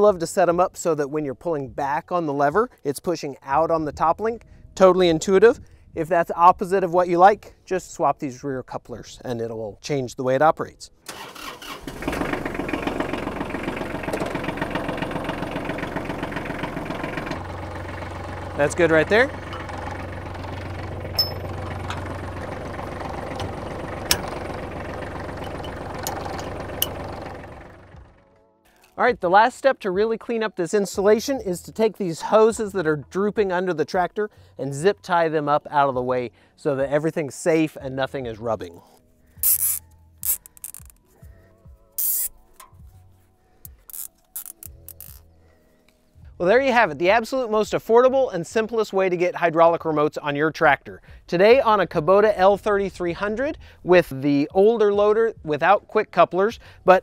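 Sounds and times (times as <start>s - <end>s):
faint background music: 0.0s - 11.8s, 27.9s - 57.0s
tractor diesel engine idling: 11.1s - 28.3s
sharp metallic clicks: 23.3s - 24.7s, 39.4s - 41.0s, 42.0s - 42.8s, 43.6s - 45.2s
zip ties ratcheting: 39.4s - 41.1s, 42.0s - 42.8s, 43.6s - 45.3s.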